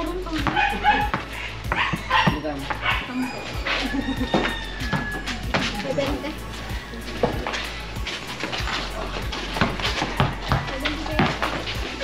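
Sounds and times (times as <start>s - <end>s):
basketball bouncing on concrete: 0.0s - 3.1s, 4.1s - 6.4s, 7.1s - 12.0s
background music: 0.0s - 12.0s
players' voices: 0.0s - 12.0s
dog barking: 0.5s - 4.0s.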